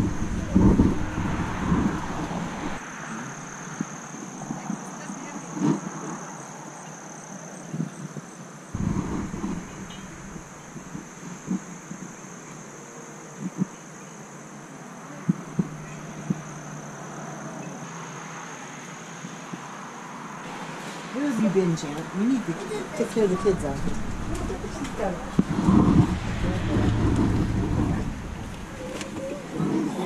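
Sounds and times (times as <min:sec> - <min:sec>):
wind gust on microphone: 0:00.0 - 0:06.3, 0:08.8 - 0:12.2, 0:21.5 - 0:30.0
steady background hiss: 0:00.0 - 0:30.0
faint high whine: 0:08.8 - 0:12.0, 0:22.6 - 0:29.6.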